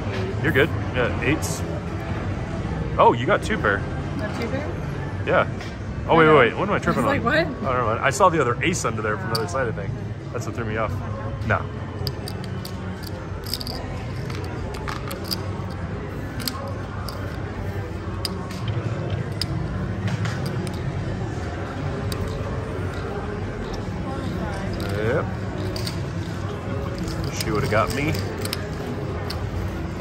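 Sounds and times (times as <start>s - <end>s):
murmur of voices: 0.0s - 30.0s
cards and chips clicking: 11.9s - 30.0s.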